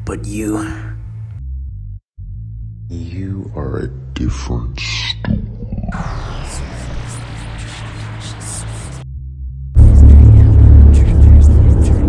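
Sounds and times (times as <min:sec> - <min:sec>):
deep rumbling: 0:00.9 - 0:12.0
crackling noise: 0:05.2 - 0:09.0.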